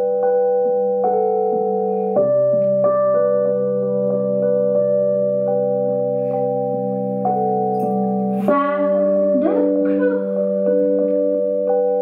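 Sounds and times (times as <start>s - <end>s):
keyboard chords: 0.0s - 12.0s
woman singing: 8.4s - 11.2s.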